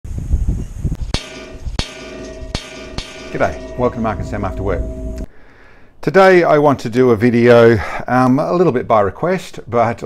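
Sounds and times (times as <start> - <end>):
sharp bangs with metallic ring: 1.1 - 5.3
low rumble: 1.6 - 5.3.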